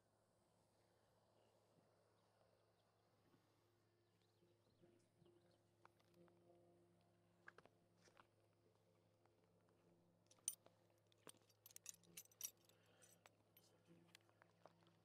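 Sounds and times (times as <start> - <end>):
metal hardware clinking: 10.3 - 10.6, 11.3 - 13.2.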